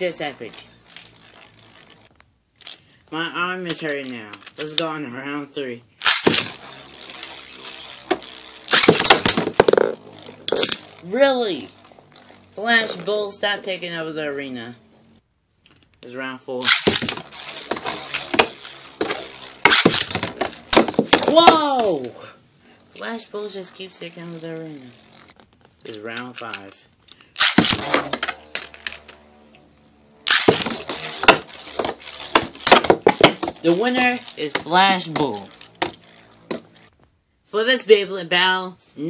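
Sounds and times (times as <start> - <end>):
spinning top whirring and scraping: 0.0 - 15.2, 16.1 - 37.1.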